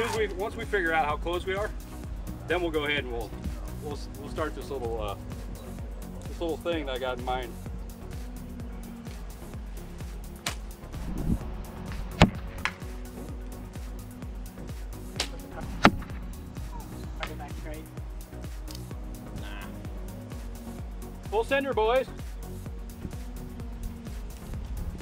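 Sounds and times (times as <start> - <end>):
background music with steady beat: 0.0 - 25.0
bow strings snapping: 10.4 - 13.0, 15.0 - 17.5, 18.6 - 19.0.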